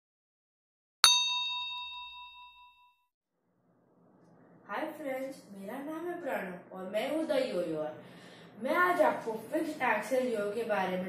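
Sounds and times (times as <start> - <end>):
bright bell ding: 1.0 - 3.0.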